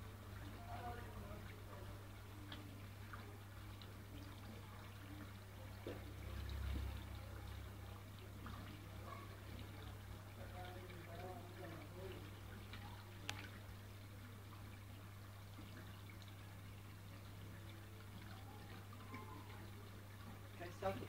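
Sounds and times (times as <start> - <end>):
water trickling: 0.0 - 21.0.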